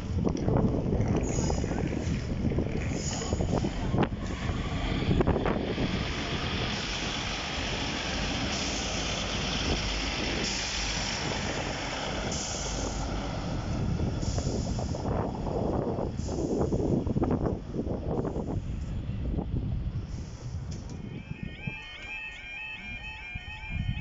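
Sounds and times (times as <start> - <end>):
diesel train engines rumbling: 0.0 - 24.0.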